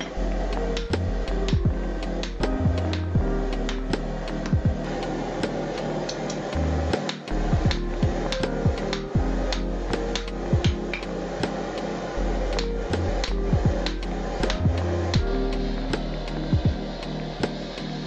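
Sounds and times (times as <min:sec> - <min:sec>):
background music with low notes: 0:00.0 - 0:18.0.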